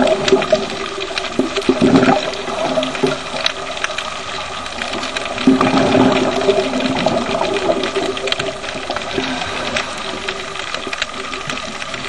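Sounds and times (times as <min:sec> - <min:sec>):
exhaled bubbles underwater: 0:00.0 - 0:12.0.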